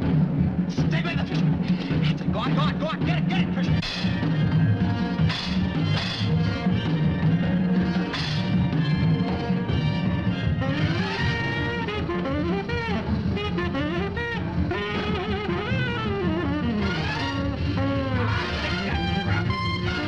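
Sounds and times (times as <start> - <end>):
drums: 0.0 - 20.0
upright bass: 0.0 - 20.0
jazz horn melodic runs: 8.5 - 20.0.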